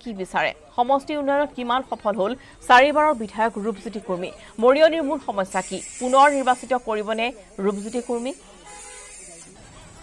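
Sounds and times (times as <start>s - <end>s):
steady high hiss: 2.7s - 9.6s.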